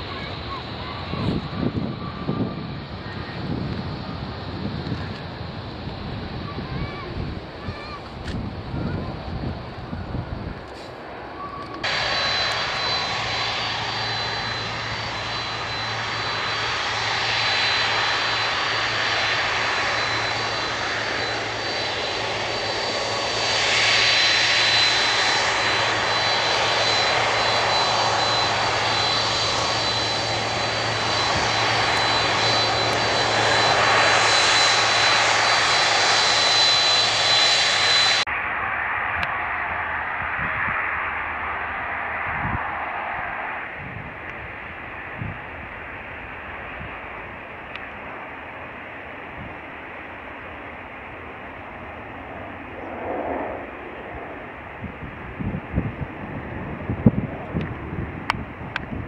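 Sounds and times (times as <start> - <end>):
jet engines rumbling with whine: 0.0 - 59.0.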